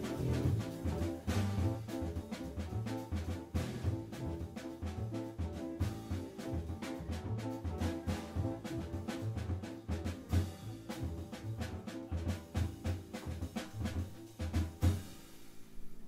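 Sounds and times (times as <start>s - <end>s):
jazz piano trio playing: 0.0s - 16.0s.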